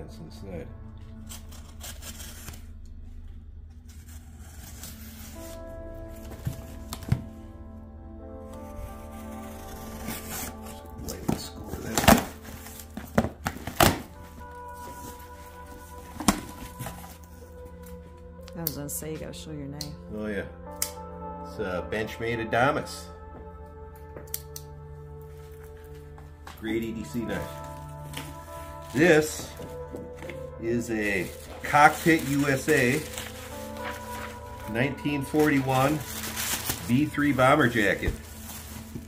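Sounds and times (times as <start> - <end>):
background music: 0.0 - 39.0
knife cutting packing tape: 1.3 - 2.7.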